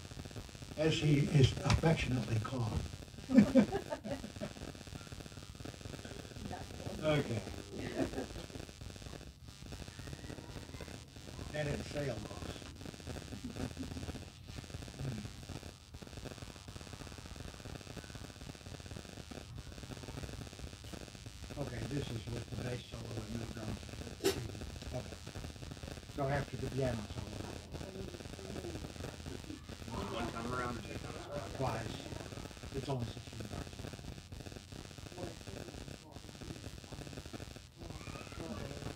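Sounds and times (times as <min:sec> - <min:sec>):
background hiss: 0:00.0 - 0:38.9
faint people talking: 0:00.8 - 0:15.5, 0:19.0 - 0:38.9.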